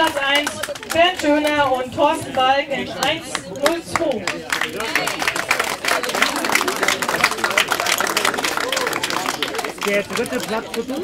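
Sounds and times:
crowd applauding: 0:00.0 - 0:01.7, 0:02.8 - 0:11.0
people talking: 0:00.0 - 0:11.0.

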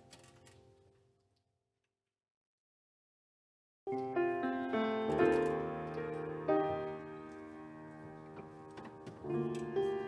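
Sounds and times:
slow quiet piano music: 0:03.9 - 0:10.0.

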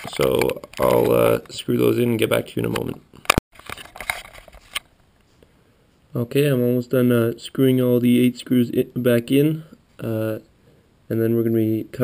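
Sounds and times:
rustling: 0:00.0 - 0:05.5.

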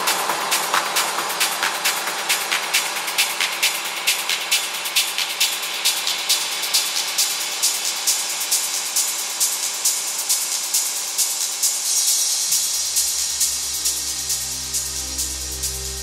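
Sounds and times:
techno music: 0:09.0 - 0:16.0.

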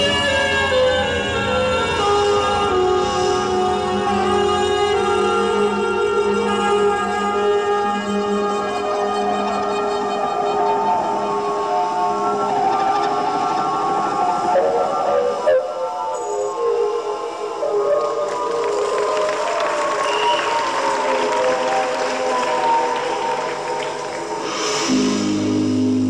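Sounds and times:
sustained synthesizer tones: 0:00.0 - 0:26.0.

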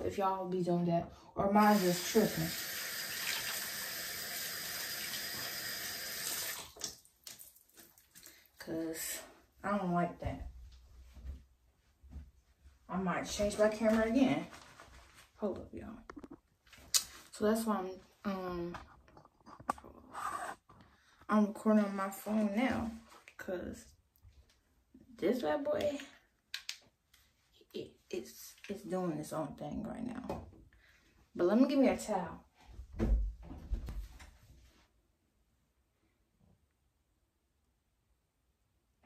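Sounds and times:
sink tap running: 0:01.7 - 0:06.9
soft rustle: 0:13.5 - 0:15.7.

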